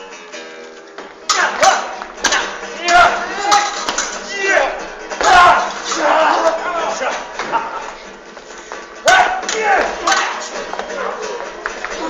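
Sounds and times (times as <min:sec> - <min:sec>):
people shouting and crying out: 0:01.2 - 0:08.0, 0:09.0 - 0:12.0.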